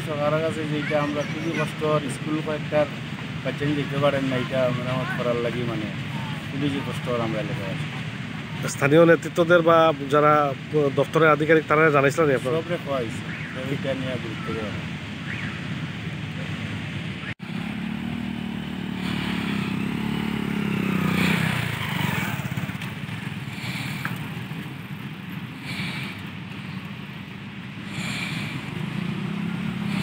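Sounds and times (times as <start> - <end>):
small motorcycle engine labouring: 17.4 - 26.9, 27.8 - 30.0.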